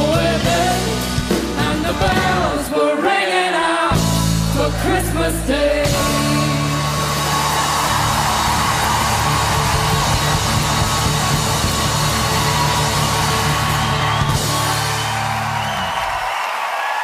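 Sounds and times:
live band holding chord: 0:03.9 - 0:16.1
crowd cheering and clapping: 0:06.1 - 0:17.0.

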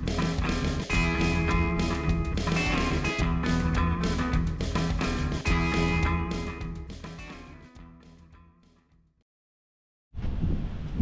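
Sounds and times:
low rumbling wind on microphone: 0:10.2 - 0:11.0.

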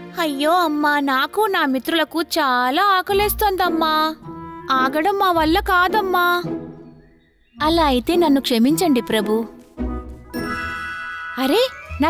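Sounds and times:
cartoon chime: 0:10.3 - 0:12.0.

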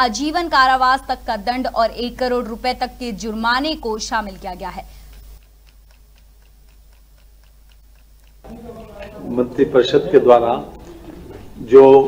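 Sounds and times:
faint even ticking: 0:00.0 - 0:09.6.

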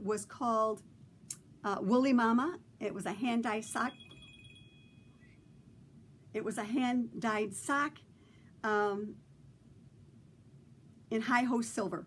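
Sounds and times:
faint high ringing tone: 0:03.4 - 0:06.0.

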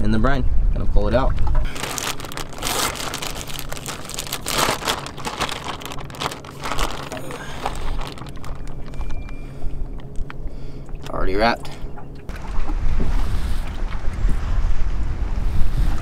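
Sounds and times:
plastic bag crinkling: 0:01.7 - 0:09.2.

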